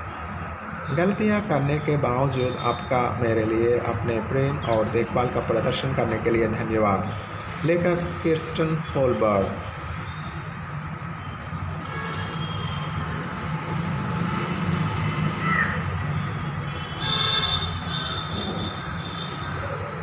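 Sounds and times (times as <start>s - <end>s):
low rumble of distant traffic: 0.0s - 20.0s.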